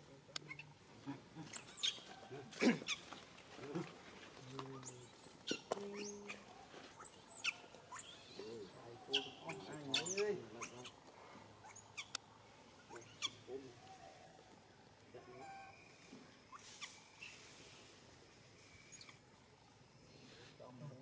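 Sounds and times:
infant monkeys squeaking: 0:00.4 - 0:00.8, 0:01.4 - 0:03.1, 0:04.7 - 0:11.0, 0:11.6 - 0:12.2, 0:12.8 - 0:13.5, 0:16.5 - 0:17.4.

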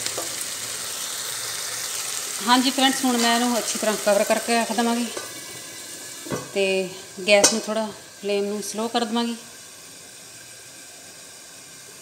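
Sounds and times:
covered pan hissing: 0:00.0 - 0:12.0.

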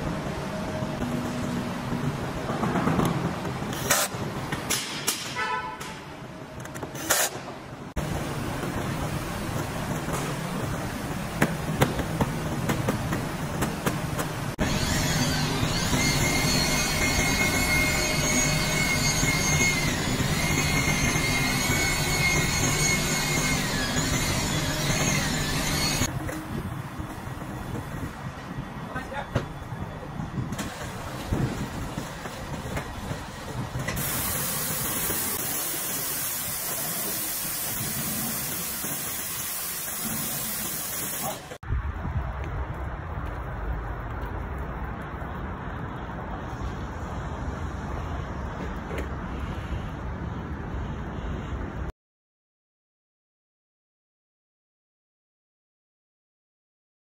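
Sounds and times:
wavering whine: 0:14.6 - 0:26.4
pressure washer jet hissing: 0:33.9 - 0:41.6.

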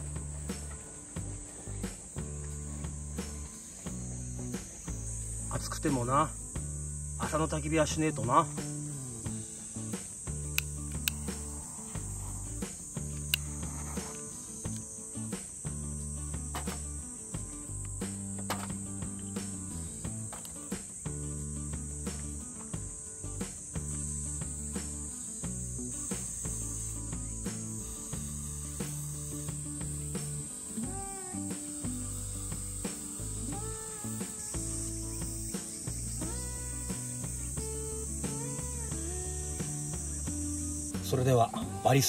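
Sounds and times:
cicadas chorus: 0:00.0 - 0:42.0.

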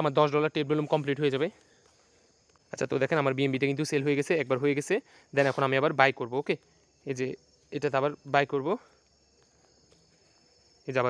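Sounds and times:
man speaking: 0:00.0 - 0:01.6, 0:02.7 - 0:08.8
faint high-pitched hiss: 0:00.0 - 0:11.0.

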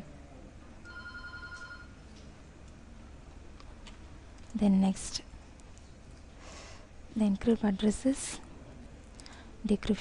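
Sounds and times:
low steady hum: 0:00.0 - 0:10.0
faint electronic ringing tone: 0:00.8 - 0:02.0.

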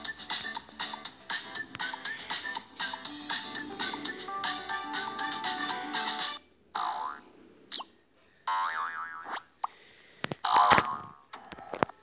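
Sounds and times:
music cue: 0:00.0 - 0:06.4.

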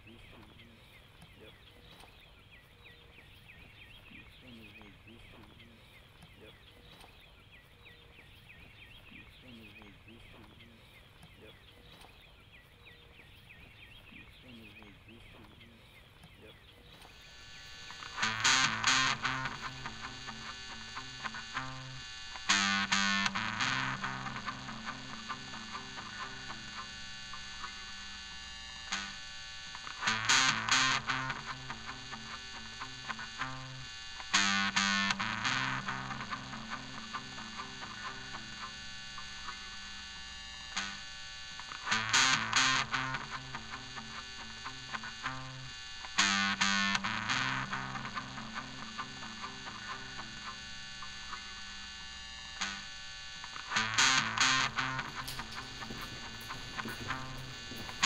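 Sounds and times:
distorted electric guitar music: 0:17.1 - 0:58.0.

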